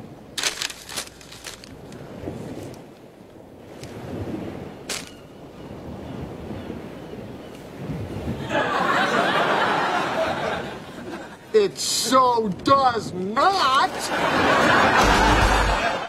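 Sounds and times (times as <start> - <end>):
paper pages rustling: 0.4 - 2.0, 4.9 - 5.1.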